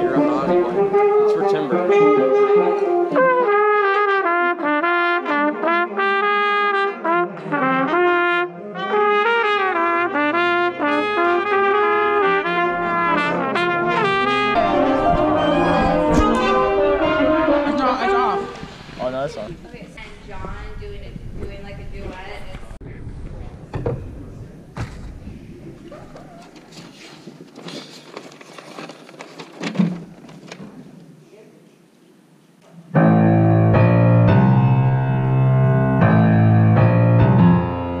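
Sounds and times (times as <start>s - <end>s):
trumpets playing runs: 0.0s - 19.1s.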